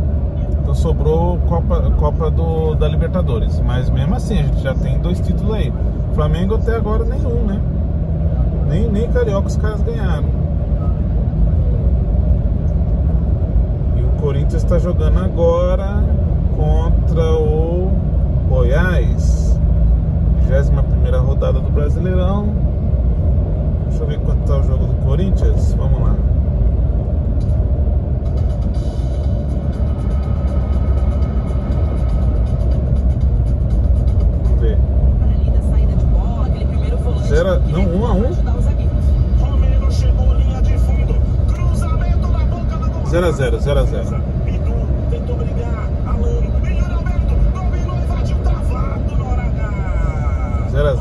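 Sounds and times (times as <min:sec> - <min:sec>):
car cabin road and engine rumble: 0:00.0 - 0:51.0
radio voice talking: 0:00.4 - 0:07.6, 0:08.6 - 0:10.3, 0:34.4 - 0:51.0.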